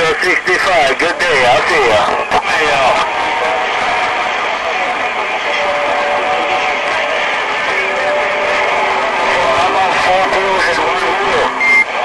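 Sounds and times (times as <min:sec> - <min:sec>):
faint garbled radio voices: 0:00.0 - 0:12.0
radio static hiss: 0:00.0 - 0:12.0.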